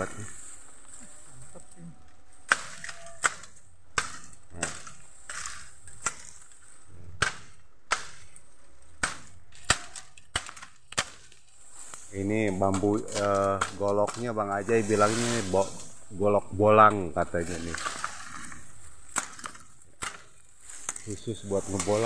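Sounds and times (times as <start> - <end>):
machete chopping bamboo: 2.4 - 6.6, 7.2 - 11.5, 12.6 - 14.3, 19.1 - 22.0.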